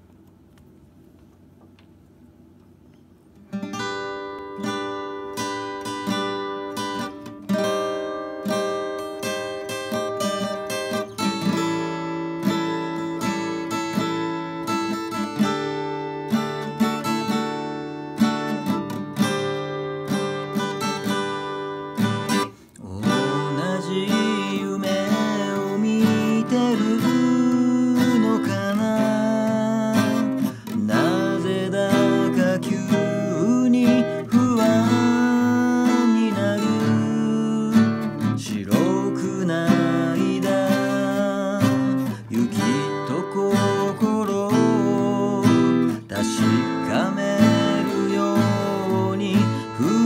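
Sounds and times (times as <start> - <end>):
acoustic guitar strumming chords: 3.4 - 50.0.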